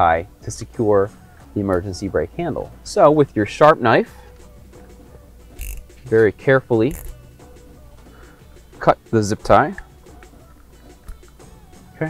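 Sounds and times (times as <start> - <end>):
soft background music: 0.0 - 12.0
utility knife clicking rattle: 5.6 - 6.1, 6.9 - 7.2.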